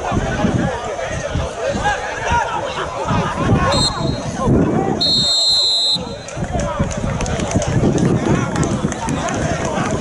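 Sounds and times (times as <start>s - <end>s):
spectators talking: 0.0s - 10.0s
referee whistle blast: 3.7s - 4.4s, 5.0s - 6.3s.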